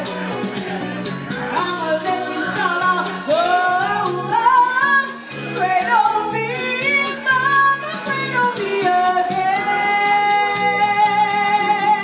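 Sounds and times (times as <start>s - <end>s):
karaoke backing track: 0.0s - 12.0s
woman singing into a microphone: 1.5s - 12.0s.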